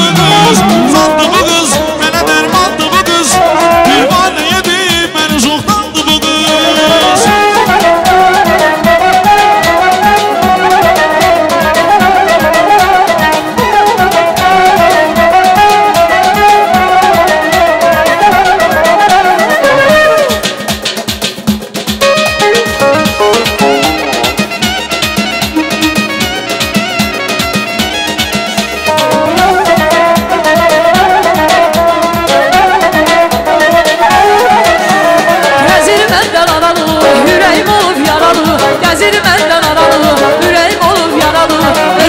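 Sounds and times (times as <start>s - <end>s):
steady drum beat: 0.0s - 11.5s, 18.3s - 32.3s, 32.9s - 42.0s
instrumental dance music melody: 0.0s - 42.0s.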